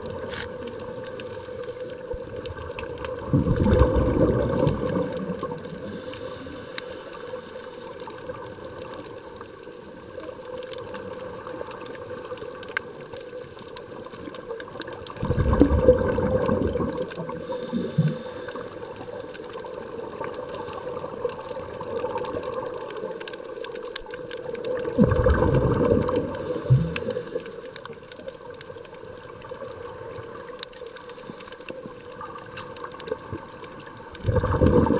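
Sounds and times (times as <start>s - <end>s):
exhaled bubbles rushing: 0.0s - 6.2s, 14.2s - 18.5s, 24.2s - 30.6s, 32.0s - 34.9s
faint clicks: 0.0s - 34.9s.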